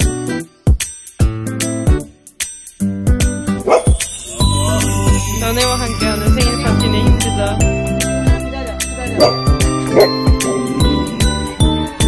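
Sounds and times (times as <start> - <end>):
steady drum beat: 0.0 - 11.9
jingling chime tones: 3.7 - 12.0.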